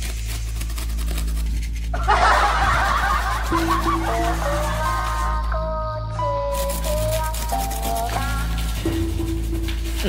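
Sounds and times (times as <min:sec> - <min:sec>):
background music: 0:00.0 - 0:10.0
high-pitched snickering laughter: 0:02.0 - 0:05.4.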